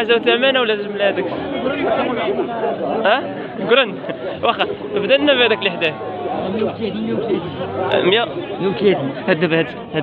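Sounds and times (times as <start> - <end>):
several people talking: 0.0 - 10.0.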